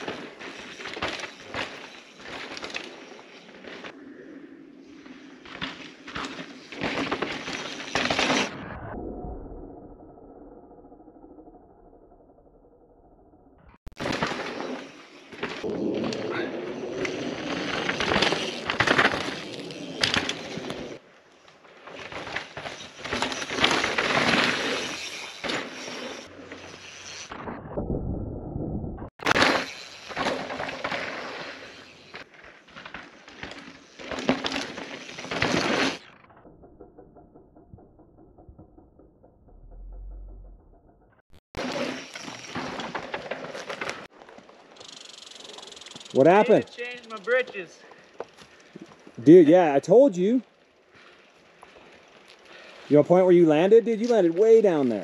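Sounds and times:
bike tyres crunching over dirt and rock: 0.0 - 4.0, 4.9 - 8.5, 13.9 - 27.6, 29.2 - 36.4, 41.6 - 55.0.

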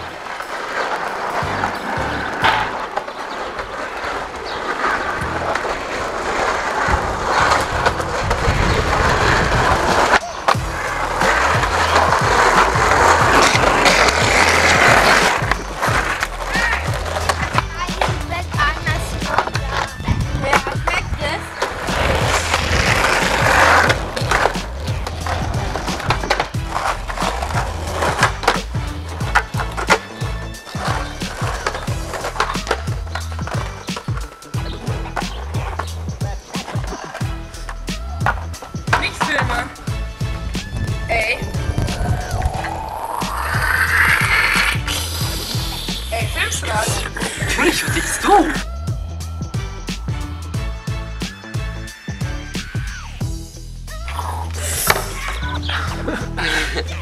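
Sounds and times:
skateboard clacks: 0.0 - 39.9
skateboard wheels rolling on asphalt: 0.0 - 57.0
background music with bass line: 1.3 - 2.9, 5.2 - 5.7, 6.7 - 57.0.

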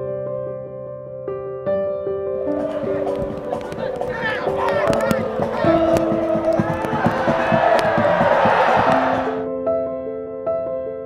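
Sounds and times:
soft piano music: 0.0 - 11.0
stadium crowd cheering: 2.5 - 9.4.

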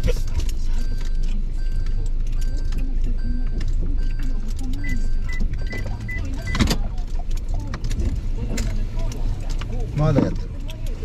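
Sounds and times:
car engine rumble in cabin: 0.0 - 11.0.

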